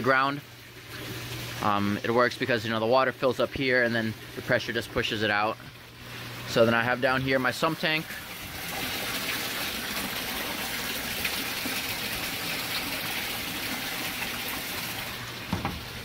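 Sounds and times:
water pouring and splashing: 0.0 - 16.0.

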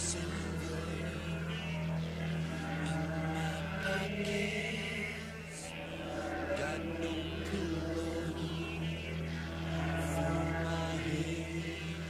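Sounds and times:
heavy metal droning chord: 0.0 - 12.0.

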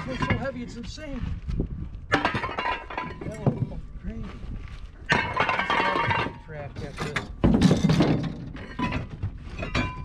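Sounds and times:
scrap metal clanking: 0.0 - 0.8, 2.1 - 3.8, 5.1 - 10.0.

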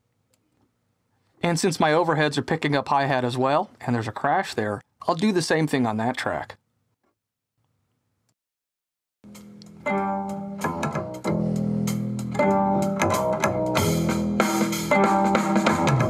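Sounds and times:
bass: 9.2 - 16.0
drums: 9.3 - 16.0
guitar: 9.3 - 16.0.

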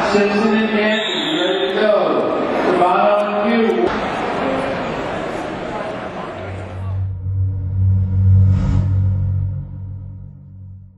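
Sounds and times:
low synthesized drone: 6.4 - 10.9
whoosh: 6.7 - 10.9.

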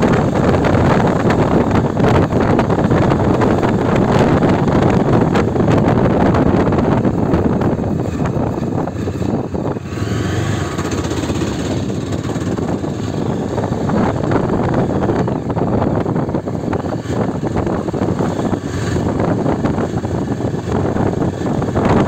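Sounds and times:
motorcycle engine running: 0.0 - 22.0
wind rush over microphone: 0.0 - 22.0.

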